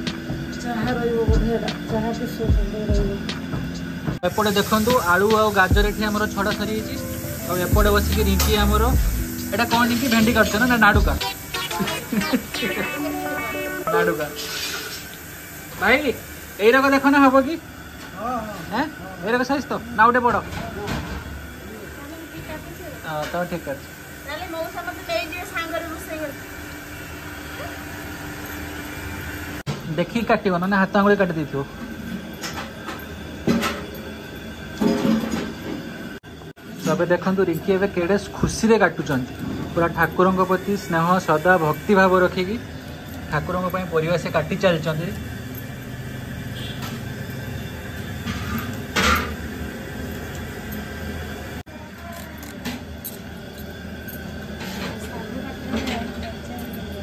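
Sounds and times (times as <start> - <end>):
steady background hiss: 0.0 - 20.3
person speaking: 4.4 - 14.5.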